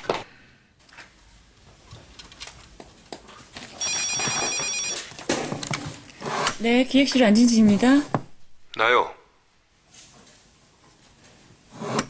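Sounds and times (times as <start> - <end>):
desk telephone ringing: 3.8 - 5.2.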